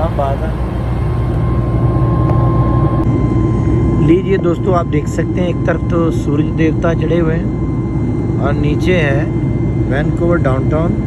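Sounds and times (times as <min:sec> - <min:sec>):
airliner cabin rumble: 0:00.0 - 0:11.0
thin steady whine: 0:00.0 - 0:11.0.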